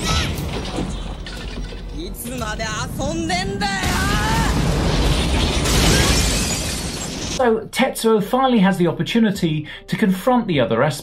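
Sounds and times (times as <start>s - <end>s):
loud crashing rumble: 2.3s - 7.4s
person shouting: 3.3s - 4.6s.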